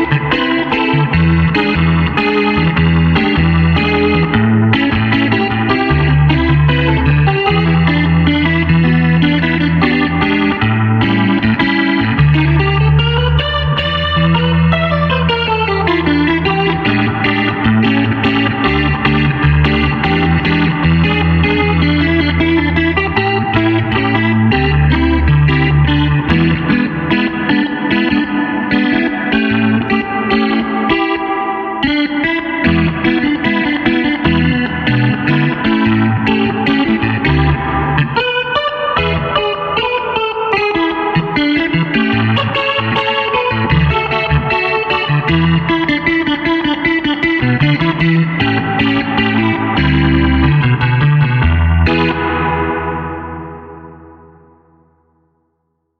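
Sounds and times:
distorted clavinet funk jam: 0.0 - 53.8.

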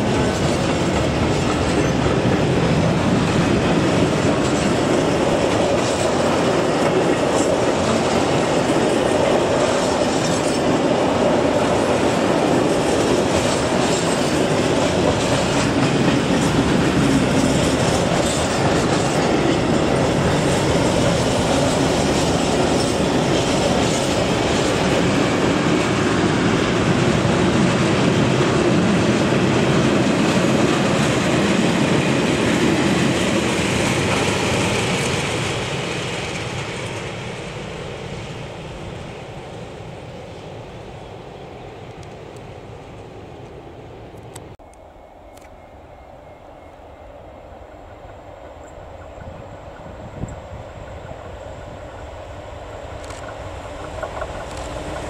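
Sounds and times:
train wheels on rails: 0.0 - 55.0.

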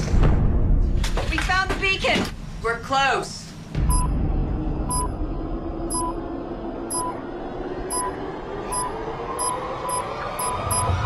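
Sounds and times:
low rumbling drone: 3.7 - 11.0
electronic tracker beeping: 3.9 - 4.1, 4.9 - 5.1, 5.9 - 6.2, 6.9 - 7.2, 7.9 - 11.0.

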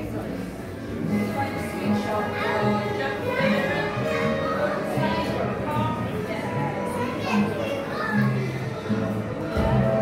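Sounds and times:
people chattering: 0.0 - 10.0
background music with held notes: 0.4 - 10.0
children's voices: 1.6 - 9.3.

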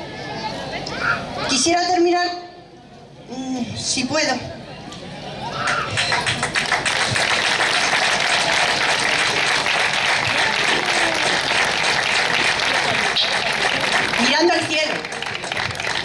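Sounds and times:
crowd applauding: 5.6 - 16.0.

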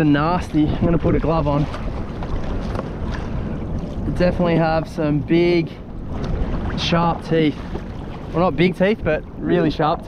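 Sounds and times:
water washing against plastic hull: 0.0 - 5.0, 5.8 - 9.4
wind noise on microphone: 0.0 - 10.0.

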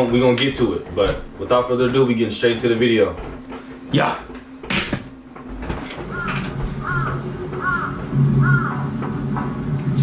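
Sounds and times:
low steady hum: 0.0 - 10.0
crow cawing: 6.1 - 9.0.

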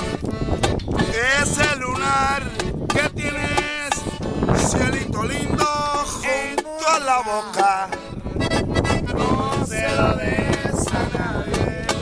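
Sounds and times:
accordion playing: 0.0 - 12.0
men's voices: 1.0 - 12.0.

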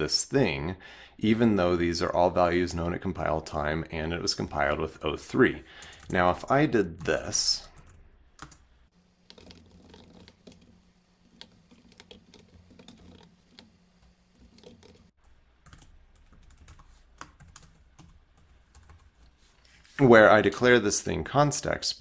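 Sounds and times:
typing on a computer keyboard: 9.3 - 10.7, 15.6 - 19.1.

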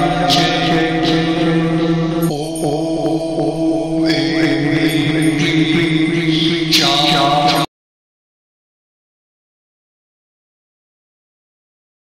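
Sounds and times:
mantra chanting: 0.0 - 7.7
sustained drone: 0.0 - 7.7.

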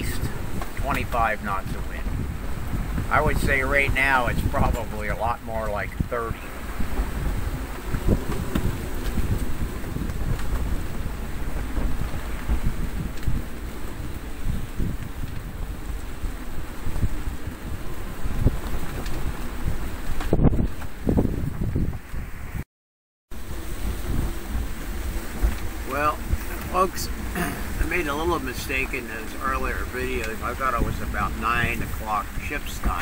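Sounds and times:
rough sea: 0.0 - 22.6, 23.3 - 33.0
wind buffeting microphone: 0.0 - 22.6, 23.3 - 33.0.

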